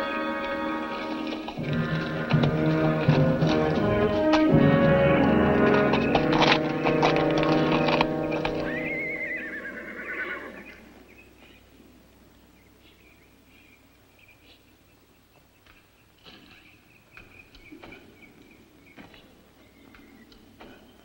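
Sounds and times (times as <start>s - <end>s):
film score music: 0.0s - 9.5s
horse whinnying: 0.0s - 10.9s.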